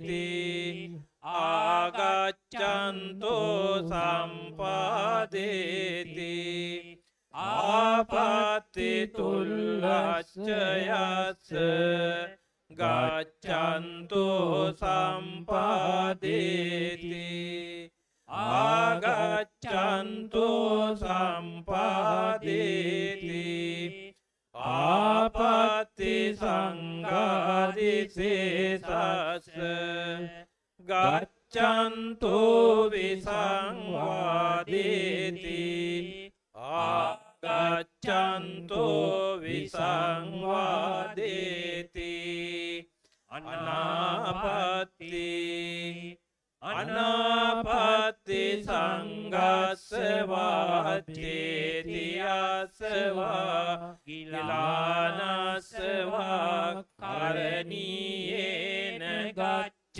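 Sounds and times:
monks chanting: 0.0 - 6.8, 7.4 - 12.2, 12.8 - 17.7, 18.4 - 23.9, 24.7 - 30.2, 30.9 - 42.8, 43.4 - 46.1, 46.7 - 59.6.

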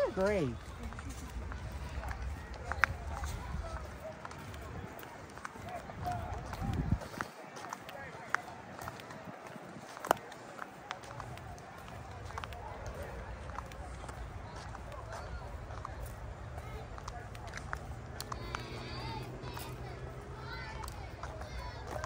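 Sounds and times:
faint distant voices: 0.0 - 22.0
running footsteps outdoors: 0.0 - 22.0.

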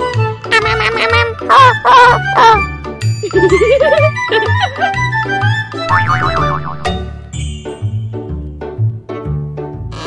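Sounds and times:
music with steady beat: 5.8 - 8.0
honk-like cries: 5.9 - 7.0.

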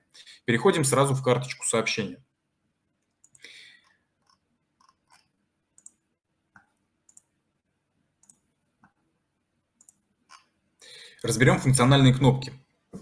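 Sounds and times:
computer mouse clicks: 3.2 - 3.5, 4.2 - 6.0, 6.6 - 7.3, 8.2 - 8.4, 9.8 - 10.5.

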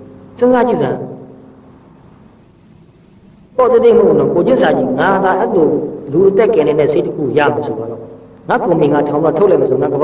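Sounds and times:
man speaking with room echo: 0.0 - 1.6, 3.5 - 10.0
faint background hiss: 0.0 - 10.0.

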